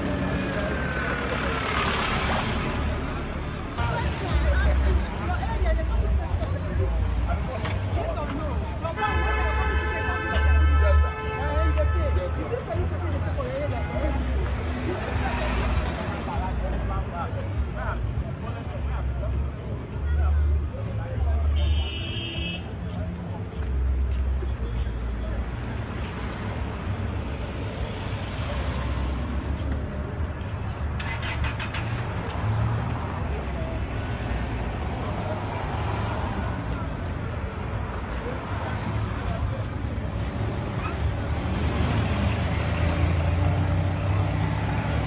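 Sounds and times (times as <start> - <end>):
cars passing close by: 0.0 - 45.0
chatter of passers-by: 0.0 - 45.0.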